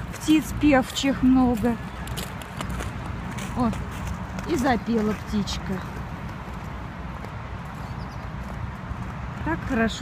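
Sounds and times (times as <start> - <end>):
walking footsteps: 0.0 - 10.0
songbird singing faintly: 7.6 - 8.8.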